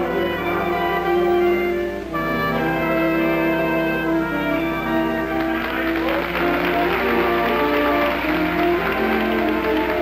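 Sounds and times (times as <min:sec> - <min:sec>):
band playing music: 0:00.0 - 0:10.0
audience applause: 0:04.8 - 0:10.0.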